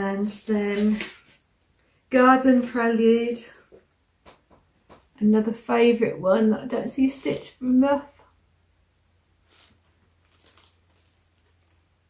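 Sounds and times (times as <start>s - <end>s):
plastic packaging crinkling: 9.4s - 12.0s.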